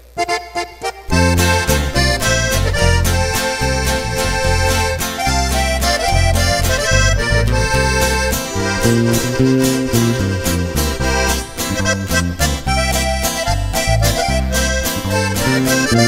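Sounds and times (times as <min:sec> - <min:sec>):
accordion melody: 0:00.0 - 0:16.0
guitar: 0:00.0 - 0:16.0
heavy bass line: 0:00.0 - 0:16.0.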